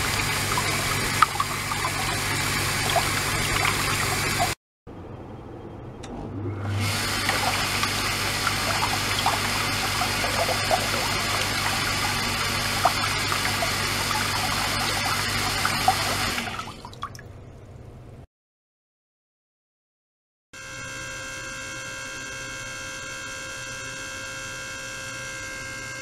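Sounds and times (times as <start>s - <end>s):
pump motor low hum: 0.0s - 4.6s, 6.0s - 17.4s, 20.6s - 26.0s
water splashing into plastic tub: 0.0s - 4.6s, 6.8s - 17.3s.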